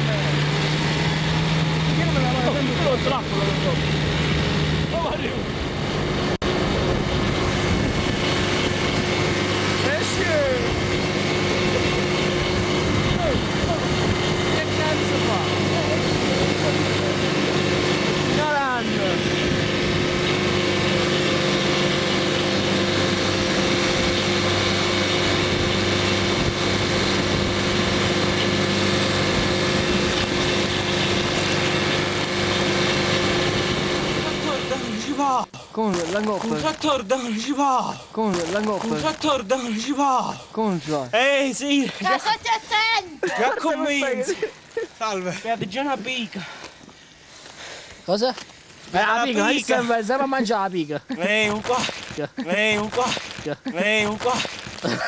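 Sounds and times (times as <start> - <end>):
vehicle engine running steadily: 0.0 - 35.4.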